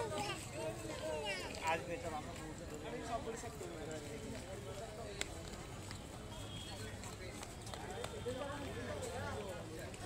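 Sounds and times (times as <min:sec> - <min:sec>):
footsteps on brick paving: 0:00.0 - 0:10.0
people chatting at a distance: 0:00.0 - 0:10.0.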